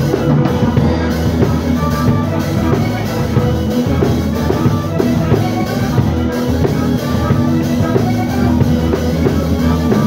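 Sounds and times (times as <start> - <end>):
drum kit: 0.0 - 10.0
electric guitar: 0.0 - 10.0
harmonica: 0.0 - 10.0.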